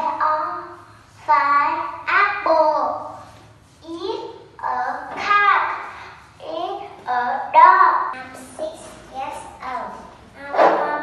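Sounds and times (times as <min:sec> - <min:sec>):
girl speaking in sing-song way: 0:00.0 - 0:11.0.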